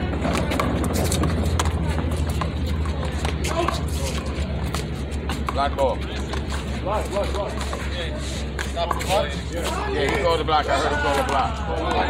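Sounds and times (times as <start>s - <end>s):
men talking: 3.4s - 12.0s.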